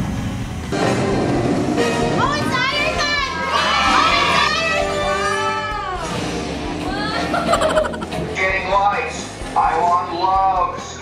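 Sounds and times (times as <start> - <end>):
people screaming and shrieking: 3.3 - 8.2.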